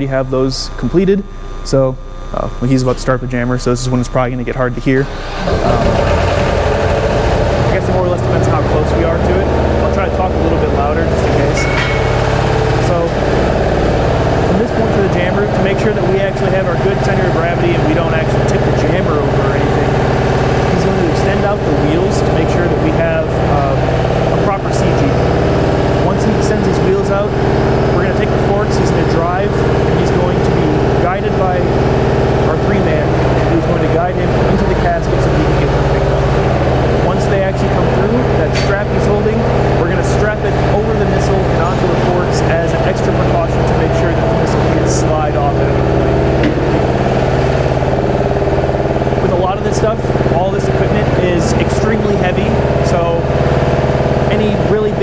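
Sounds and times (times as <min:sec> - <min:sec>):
truck engine running: 0:00.0 - 0:55.0.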